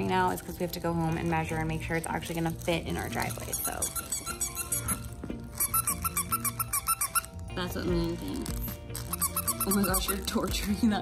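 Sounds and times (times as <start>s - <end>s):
background music: 0.0s - 11.0s
squeaky toy squeaking: 3.3s - 7.6s, 8.5s - 10.5s.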